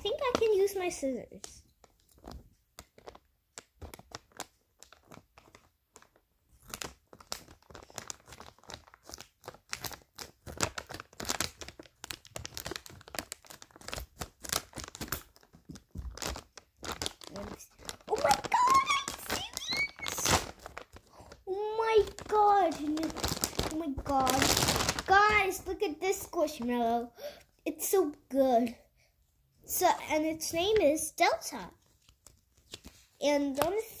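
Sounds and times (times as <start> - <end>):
plastic bag crinkling: 0.0 - 26.7.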